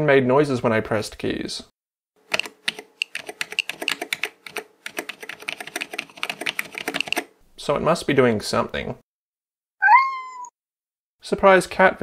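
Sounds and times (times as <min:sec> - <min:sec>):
keyboard keys clicking: 0:02.3 - 0:07.3.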